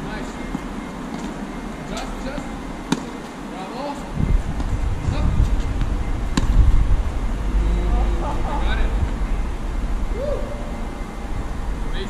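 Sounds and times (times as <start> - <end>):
tennis ball struck by racket: 2.4 - 3.2, 6.3 - 6.6
steady low rumble: 4.1 - 12.0.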